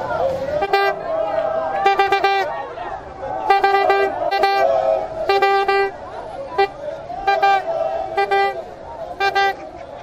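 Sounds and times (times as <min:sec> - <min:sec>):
crowd voices: 0:00.0 - 0:10.0
horn tooting short blasts: 0:00.6 - 0:01.0, 0:01.8 - 0:02.5, 0:03.4 - 0:06.0.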